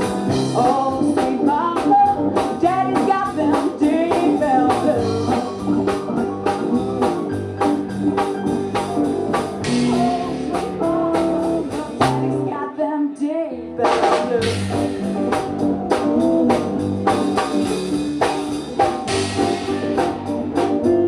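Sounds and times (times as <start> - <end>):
bending guitar notes: 0.0 - 12.8, 13.5 - 21.0
live rock band playing blues: 0.0 - 21.0.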